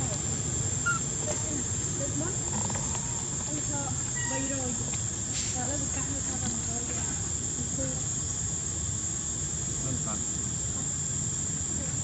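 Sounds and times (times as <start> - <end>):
high-pitched insect drone: 0.0 - 12.0.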